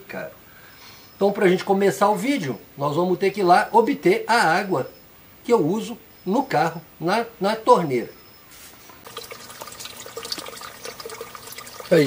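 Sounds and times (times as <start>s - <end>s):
water splashing into a tank: 9.0s - 12.0s.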